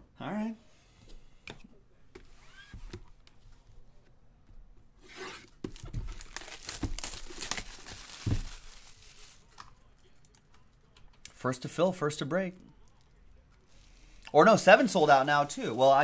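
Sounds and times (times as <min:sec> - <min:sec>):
plastic wrap tearing and crumpling: 0:05.7 - 0:09.6.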